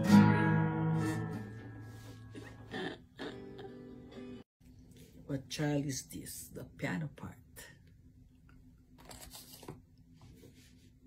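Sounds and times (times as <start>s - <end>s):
low steady hum: 1.9s - 11.0s
rustling handling noise: 9.0s - 11.0s.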